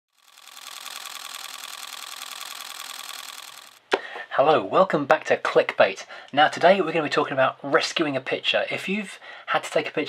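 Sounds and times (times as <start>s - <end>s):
rapid mechanical clatter: 0.1s - 3.8s.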